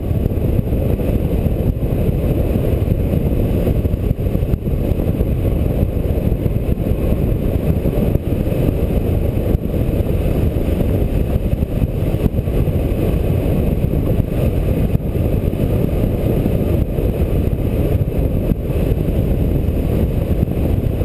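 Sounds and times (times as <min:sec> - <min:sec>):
wind rush buffeting microphone: 0:00.0 - 0:21.0.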